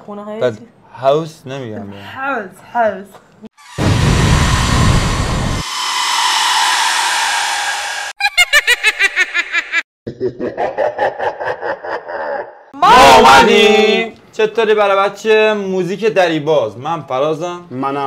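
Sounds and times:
deep rumble: 0:03.6 - 0:08.2
loud whoosh of hiss: 0:03.6 - 0:08.2
rapid laugh-like pitched pulses: 0:07.8 - 0:12.7.

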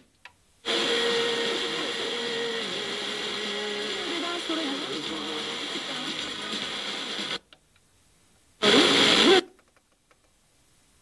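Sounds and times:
radio static hiss: 0:00.6 - 0:07.4, 0:08.6 - 0:09.6
radio station burst with voice: 0:01.1 - 0:07.4.

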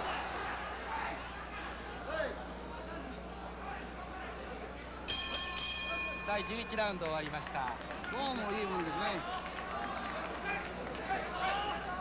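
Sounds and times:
steady low hum: 0:00.0 - 0:12.0
voices shouting: 0:08.0 - 0:12.0.

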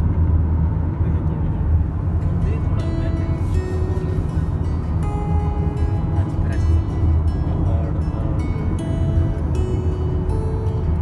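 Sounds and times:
road and engine rumble in car: 0:00.0 - 0:11.0
music with long held notes: 0:02.0 - 0:11.0.

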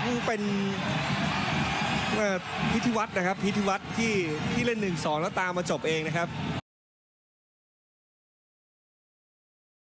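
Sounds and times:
male commentator speaking: 0:00.0 - 0:00.9, 0:02.0 - 0:06.4
stadium crowd cheering: 0:00.0 - 0:06.6.

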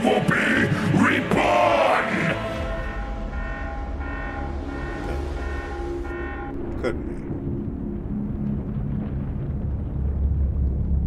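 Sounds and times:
pulsing horn-like tone: 0:02.0 - 0:07.2
low steady rumble: 0:02.5 - 0:11.0.

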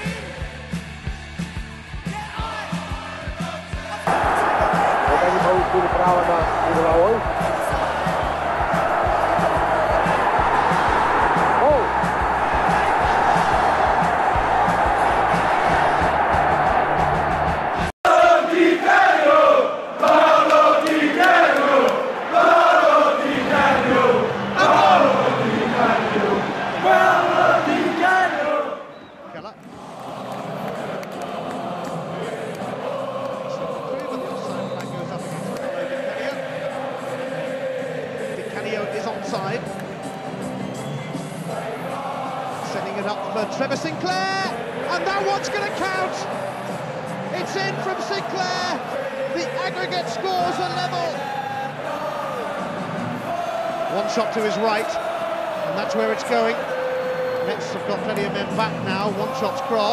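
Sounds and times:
crowd singing and chanting: 0:03.9 - 0:59.9.

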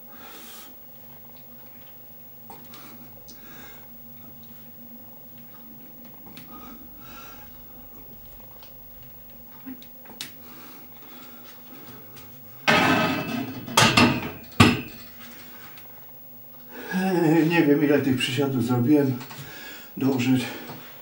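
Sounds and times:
barbell knocking on rack: 0:12.7 - 0:15.0
sharp metallic clanks: 0:12.7 - 0:15.1.

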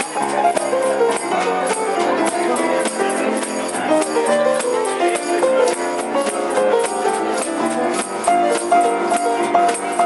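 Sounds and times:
upright piano playing: 0:00.0 - 0:10.0.

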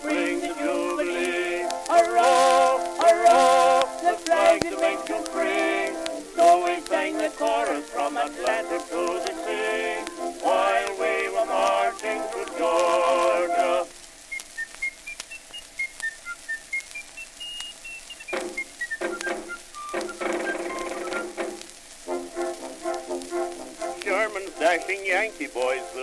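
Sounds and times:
band accompaniment: 0:00.0 - 0:13.7, 0:18.3 - 0:26.0
male vocal duet: 0:00.0 - 0:13.9
high whistle-like instrumental run: 0:13.3 - 0:24.8.

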